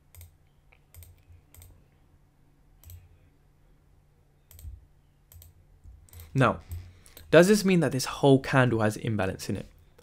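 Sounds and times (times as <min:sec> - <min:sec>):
faint sharp computer clicks: 0:00.1 - 0:01.8, 0:02.8 - 0:03.1, 0:04.5 - 0:07.3.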